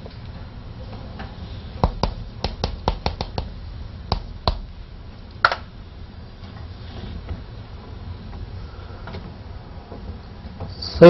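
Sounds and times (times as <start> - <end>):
low room hum: 0.0 - 11.0
chalk tapping on blackboard: 1.8 - 4.6.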